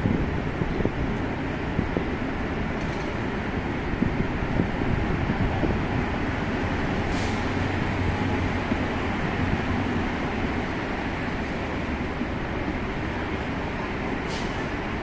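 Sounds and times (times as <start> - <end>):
rumble of car engines and tyres: 0.0 - 15.0
brief hiss: 7.1 - 7.6, 14.2 - 14.7.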